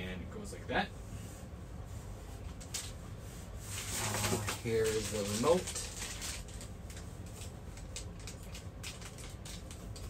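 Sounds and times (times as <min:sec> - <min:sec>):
plastic packaging crinkling: 0:03.7 - 0:10.0.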